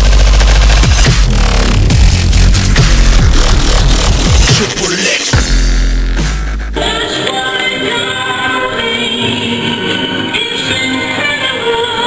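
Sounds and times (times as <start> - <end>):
music with singing voices: 0.0 - 12.0.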